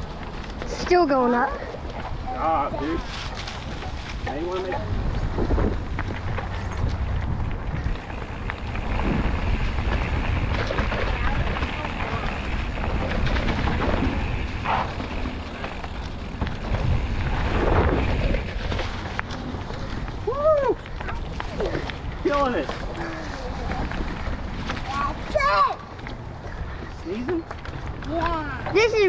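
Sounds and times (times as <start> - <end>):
bike tyres crunching on gravel: 0.0 - 29.0
wind buffeting microphone: 0.0 - 29.0
bike knocking over rough ground: 3.2 - 25.0.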